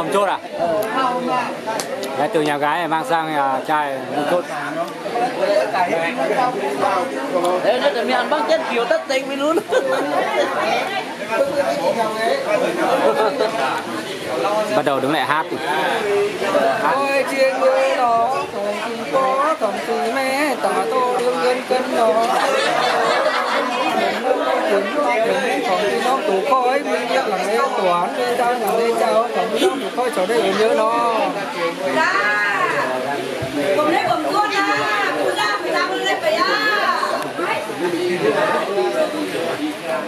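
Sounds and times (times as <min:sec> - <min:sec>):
overlapping chatter of voices: 0:00.0 - 0:40.0
people talking at once: 0:00.0 - 0:40.0.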